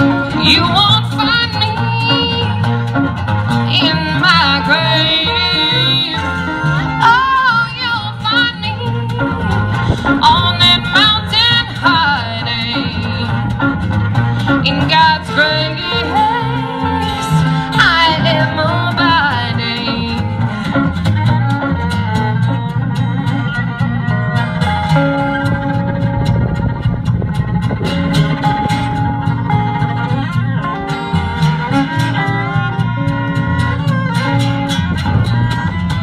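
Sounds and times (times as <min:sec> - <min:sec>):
folk-country band playing: 0:00.0 - 0:36.0
sliding wavering lead melody: 0:00.0 - 0:36.0.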